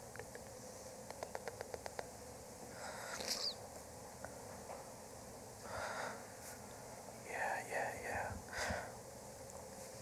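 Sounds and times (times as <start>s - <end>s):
person whispering: 7.2s - 8.5s.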